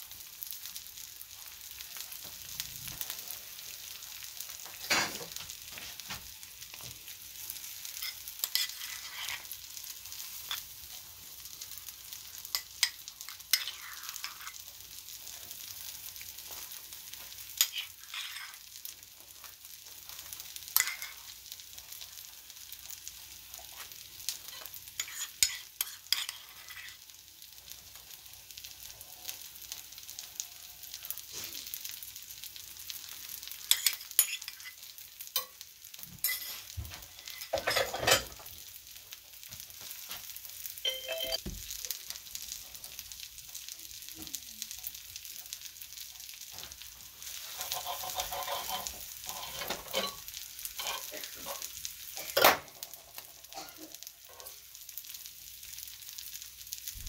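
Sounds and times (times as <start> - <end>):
food sizzling in a skillet: 0.0 - 57.0
utensil clicks and scrapes: 47.4 - 50.1.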